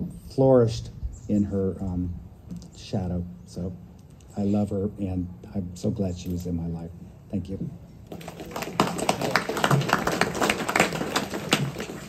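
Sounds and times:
people clapping unevenly: 0:08.1 - 0:12.0.

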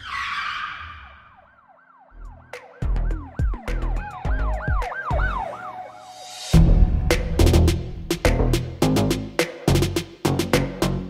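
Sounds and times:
siren effect wailing: 0:00.0 - 0:06.6
heavy bass hits: 0:06.6 - 0:10.5.

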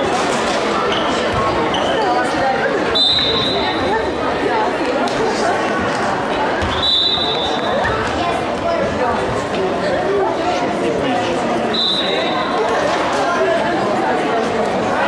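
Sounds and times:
crowd chatter echoing indoors: 0:00.0 - 0:15.0
referee's whistle blasts: 0:02.9 - 0:03.8, 0:06.7 - 0:07.8, 0:11.7 - 0:12.6
ball bouncing on court floor: 0:06.6 - 0:06.8.

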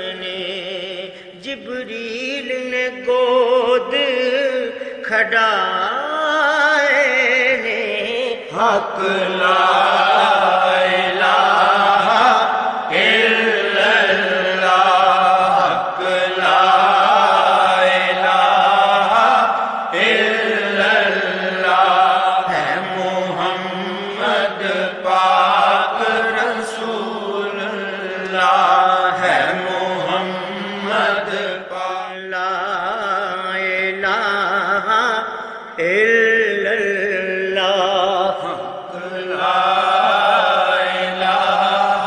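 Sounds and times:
voices chanting devotional verse: 0:00.0 - 0:42.0.

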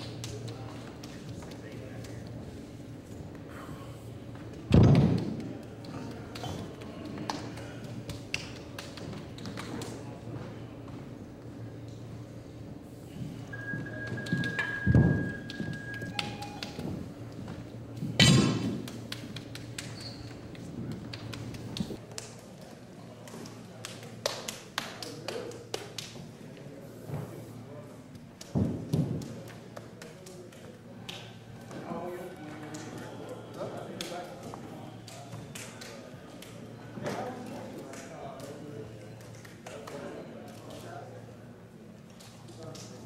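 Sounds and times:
low room murmur: 0:00.0 - 0:43.0
steady low hum: 0:00.0 - 0:43.0.

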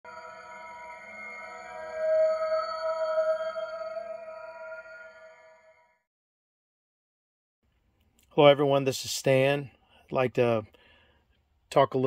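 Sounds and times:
synthesized chord: 0:00.0 - 0:05.8.

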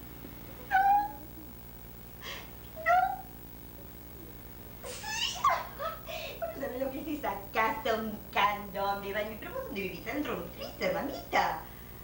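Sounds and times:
woman squealing no: 0:00.7 - 0:01.3, 0:04.8 - 0:05.5.

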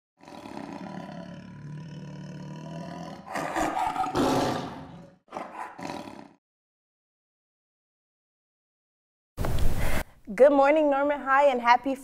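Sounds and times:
big cat growling and roaring: 0:00.2 - 0:06.4.

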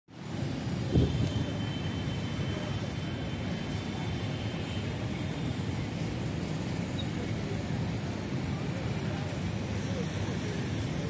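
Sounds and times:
low city rumble: 0:00.1 - 0:11.0.

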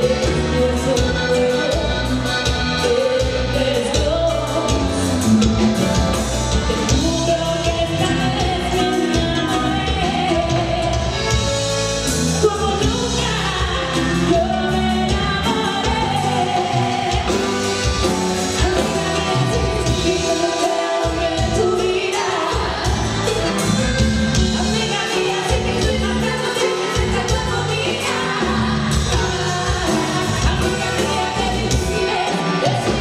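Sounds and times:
electric bass: 0:00.0 - 0:20.5, 0:21.2 - 0:33.0
accordion: 0:00.0 - 0:33.0
drum kit: 0:00.0 - 0:33.0
live band music: 0:00.0 - 0:33.0
woman singing: 0:00.0 - 0:33.0.

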